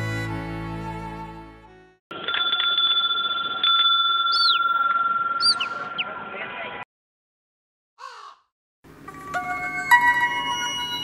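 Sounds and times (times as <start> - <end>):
electronic phone ringtone: 2.1 - 6.0, 9.1 - 11.0.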